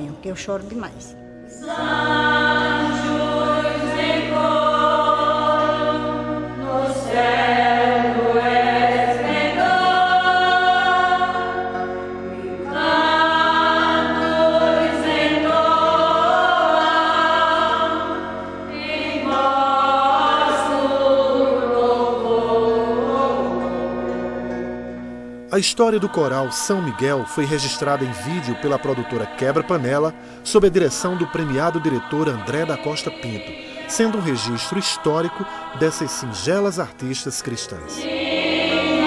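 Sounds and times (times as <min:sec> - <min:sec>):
women's choir singing a hymn: 0:00.0 - 0:24.8, 0:25.6 - 0:39.0
organ chords: 0:00.0 - 0:39.0.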